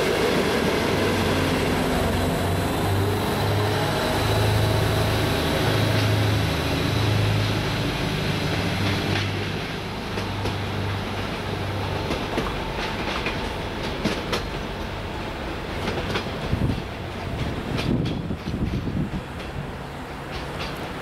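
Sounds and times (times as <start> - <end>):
diesel train engine hum: 0.0 - 21.0
train wheels clacking over rail joints: 0.0 - 21.0.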